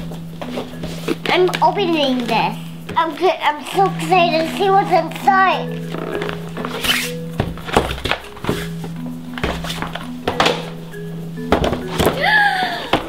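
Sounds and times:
background music: 0.0 - 13.0
toy packaging thunks and crinkling: 7.4 - 10.8, 11.4 - 12.3.

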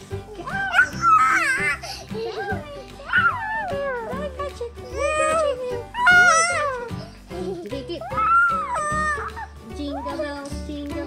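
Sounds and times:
child squealing with laughter: 0.4 - 1.8, 8.0 - 9.5.

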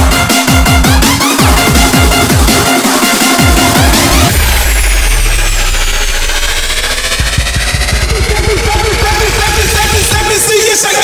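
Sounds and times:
low bass drone: 0.0 - 10.5
electronic kick drum: 0.0 - 10.7
high-pitched falling sweep: 1.1 - 10.5.

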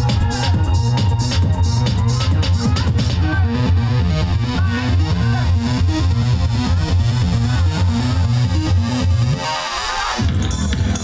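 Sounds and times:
distorted synthesizer electronic music: 0.0 - 11.0
pulsing bass line: 0.0 - 11.0.

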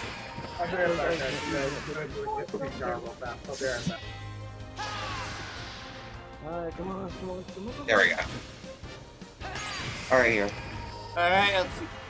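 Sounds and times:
action film background music: 0.0 - 12.0.

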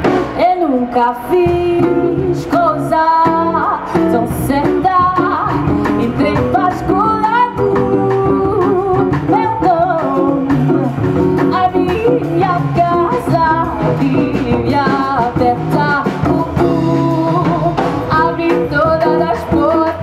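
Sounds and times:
guitar: 0.0 - 20.0
upright double bass: 0.0 - 20.0
woman singing into a microphone: 0.3 - 20.0.

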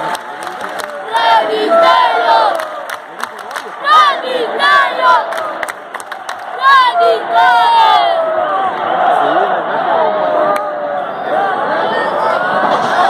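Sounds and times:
sharp claps: 0.0 - 1.0, 2.5 - 3.8, 5.3 - 6.6
crowd cheering: 0.0 - 13.0.

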